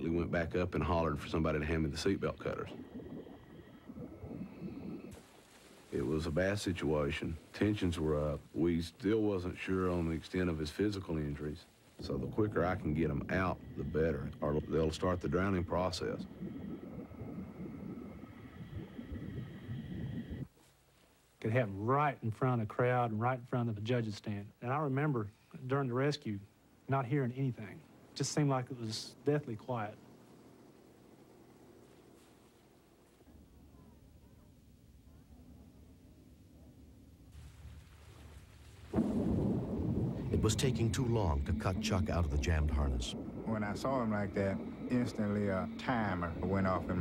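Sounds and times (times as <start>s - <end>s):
underwater churning rumble: 0.0s - 20.5s, 38.8s - 47.0s
faint steady high tones: 5.9s - 20.5s, 39.5s - 47.0s.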